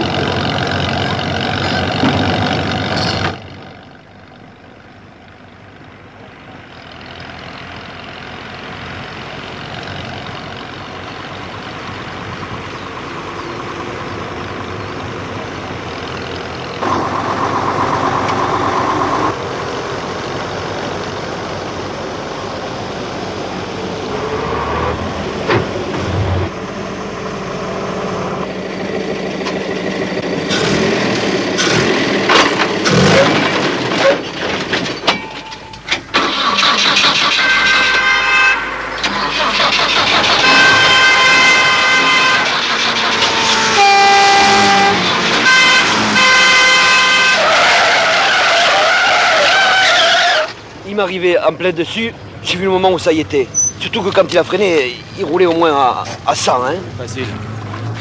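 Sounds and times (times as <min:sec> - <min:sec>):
car driving at speed: 0:00.0 - 0:34.3, 0:53.2 - 0:58.0
car horns blaring: 0:35.6 - 0:50.6.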